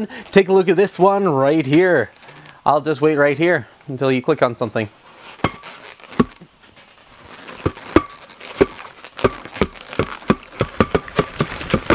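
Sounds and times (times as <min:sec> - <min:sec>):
balloons knocking and squeaking: 0:05.1 - 0:11.9.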